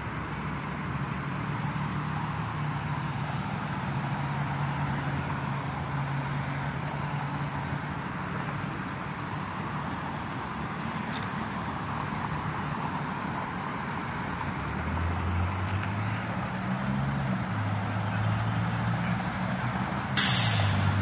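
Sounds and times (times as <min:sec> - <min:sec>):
road traffic: 0:00.0 - 0:21.0
air brakes hissing: 0:20.2 - 0:21.0.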